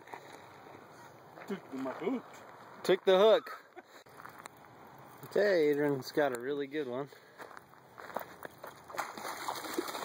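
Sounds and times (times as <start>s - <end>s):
footsteps in dry grass: 4.1s - 5.2s, 7.1s - 9.2s.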